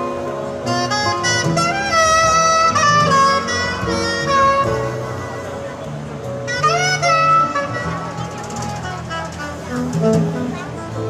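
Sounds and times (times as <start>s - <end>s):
bass notes: 0.0s - 11.0s
drum kit played with brushes: 0.0s - 11.0s
saxophone bending notes: 0.0s - 11.0s.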